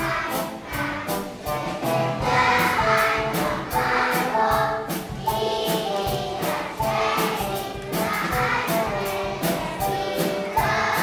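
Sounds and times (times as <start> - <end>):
children's choir singing: 0.0 - 11.0
musical backing with beat: 0.0 - 11.0.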